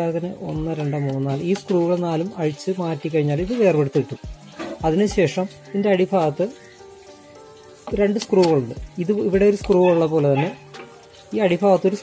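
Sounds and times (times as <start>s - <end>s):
person speaking: 0.0s - 6.6s, 7.9s - 10.7s
faint background music: 0.0s - 12.0s.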